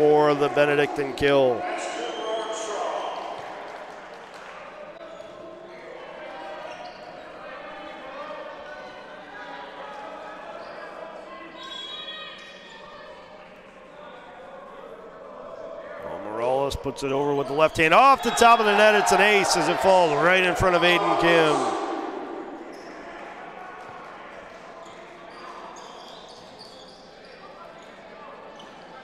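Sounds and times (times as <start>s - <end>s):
indistinct voices echoing: 17.8s - 24.1s
crowd reaction: 17.8s - 24.2s.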